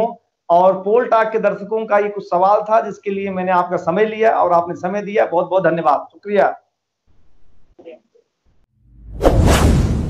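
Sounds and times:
whoosh with deep rumble: 9.0 - 10.0.

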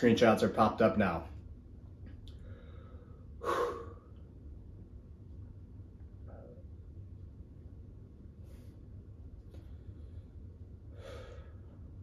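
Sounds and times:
faint low hum: 0.0 - 12.0
man exhaling sharply: 2.7 - 4.1.

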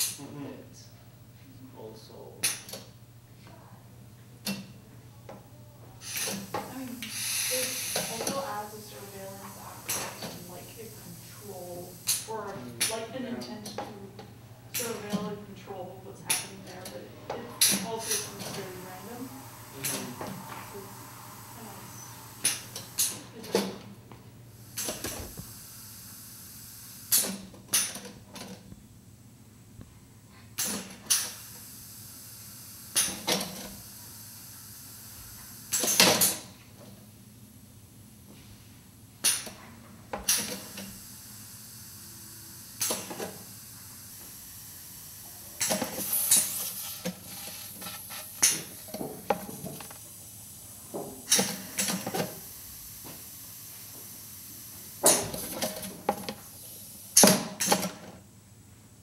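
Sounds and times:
pneumatic strikers knocking: 6.0 - 8.8, 16.3 - 19.2, 42.8 - 43.5, 45.6 - 50.0, 50.9 - 52.5, 55.0 - 58.1
hiss of air: 6.0 - 12.9, 17.6 - 23.7, 24.6 - 27.8, 30.6 - 36.6, 40.3 - 57.8.

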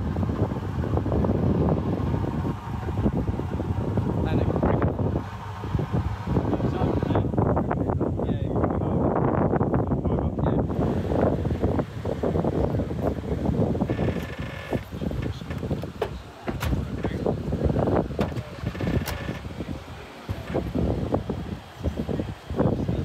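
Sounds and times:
wind buffeting microphone: 0.0 - 23.0
people talking: 4.1 - 5.1, 6.4 - 9.2, 9.9 - 10.9, 12.5 - 23.0.

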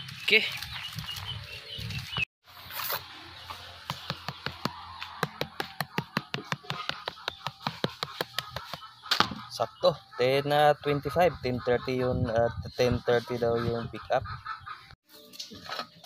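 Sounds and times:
knife tapping on roast skin: 3.9 - 8.9.

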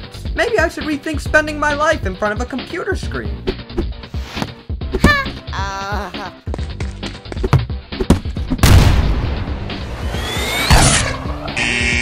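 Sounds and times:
background music: 0.0 - 12.0
rising cartoon whistle: 10.1 - 11.9.

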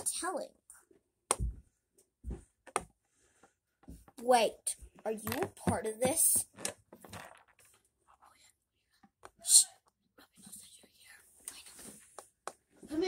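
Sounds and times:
plastic toy figures tapping: 5.0 - 7.5
child whispering: 9.4 - 11.8.

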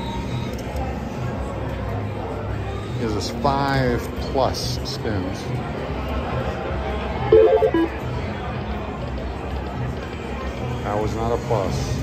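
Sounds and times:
slot machine electronic chime: 7.3 - 7.9
stepped beeping tones: 7.3 - 7.9
casino floor din: 7.4 - 7.9
slot machine reel-spin music: 7.4 - 7.9.

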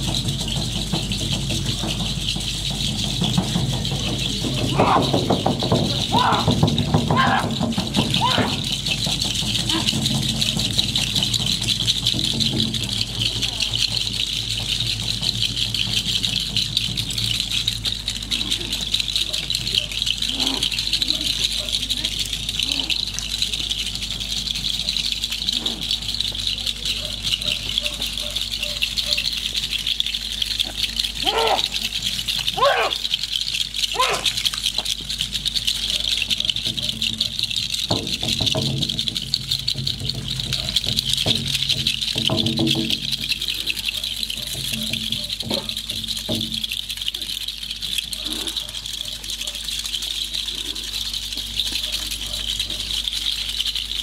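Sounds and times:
hand rattles shaken: 0.0 - 54.0
short rising vocal calls: 6.0 - 10.0.

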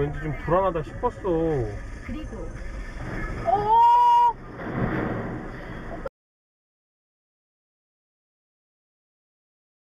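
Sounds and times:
rough noise: 0.8 - 6.1.

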